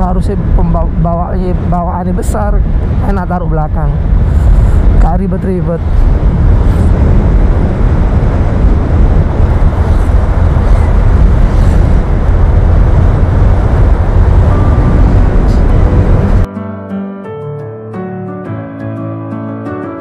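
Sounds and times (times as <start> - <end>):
road and engine noise: 0.0 - 16.5
wind buffeting a microphone: 0.0 - 16.5.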